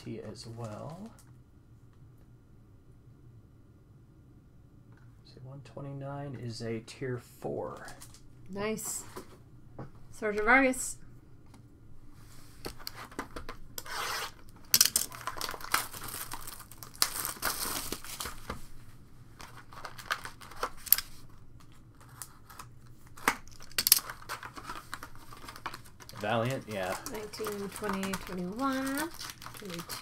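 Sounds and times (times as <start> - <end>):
foil wrappers tearing and crinkling: 13.8 - 18.6, 19.4 - 30.0.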